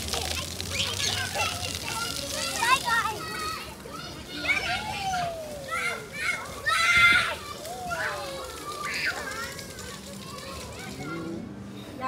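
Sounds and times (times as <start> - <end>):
children shouting: 0.0 - 11.6.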